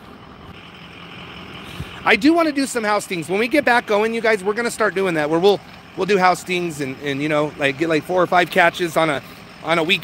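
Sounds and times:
road traffic hiss and rumble: 0.0 - 10.0.

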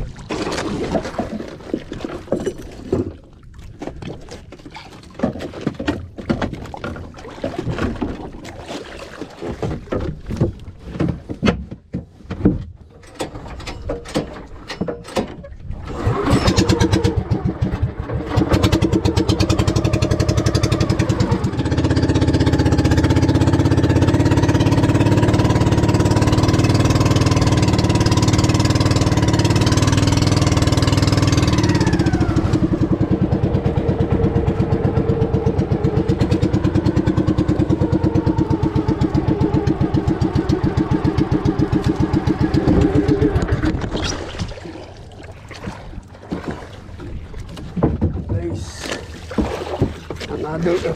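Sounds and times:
small boat engine running: 15.5 - 50.9.

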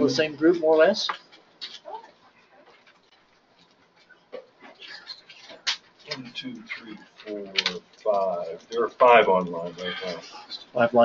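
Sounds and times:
faint voice fragments: 4.7 - 11.0.

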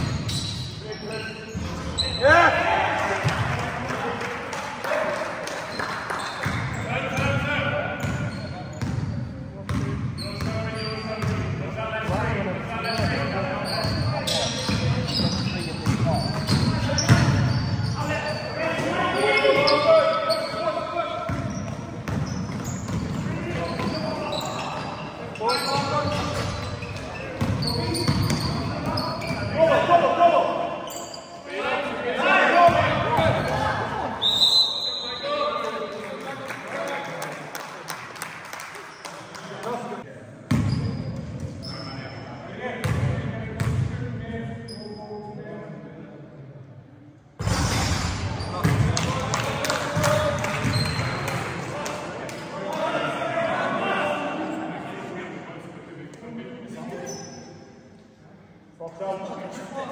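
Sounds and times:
basketball bouncing on court: 9.7 - 10.6, 21.3 - 24.0, 25.8 - 29.5, 42.8 - 43.9, 48.6 - 49.0.

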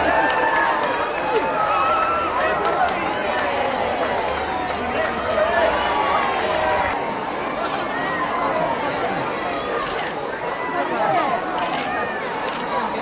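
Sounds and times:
crowd chattering and calling out: 0.0 - 13.0.

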